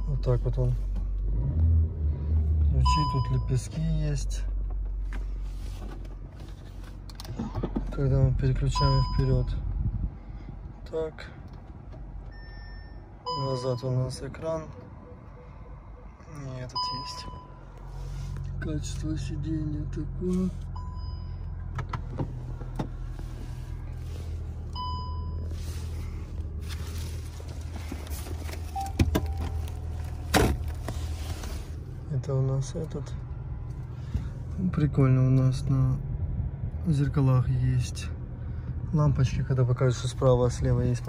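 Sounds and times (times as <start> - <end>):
low hum in car cabin: 0.0 - 41.0
electronic warning chime: 12.4 - 17.6.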